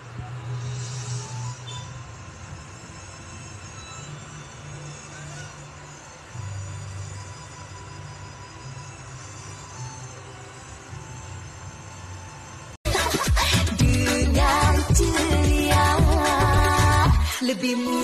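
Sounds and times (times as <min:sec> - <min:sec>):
soft background music from tv: 0:00.0 - 0:18.0.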